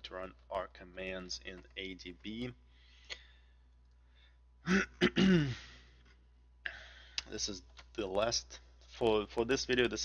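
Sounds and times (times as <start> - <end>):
man clearing throat: 4.6 - 5.8.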